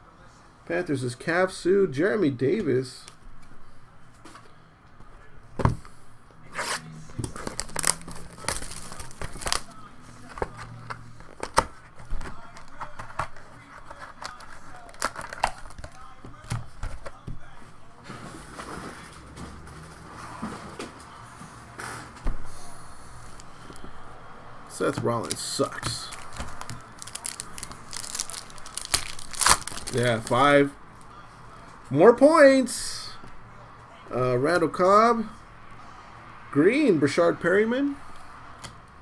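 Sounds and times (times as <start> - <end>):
wrapper crinkling and tearing: 7.2 - 11.6, 12.3 - 16.5, 25.2 - 30.5
cards clicking and snapping: 7.2 - 17.3, 25.2 - 30.4.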